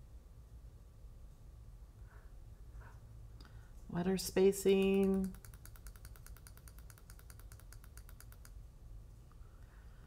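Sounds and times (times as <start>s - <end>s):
rapid mouse clicking: 4.6s - 8.6s.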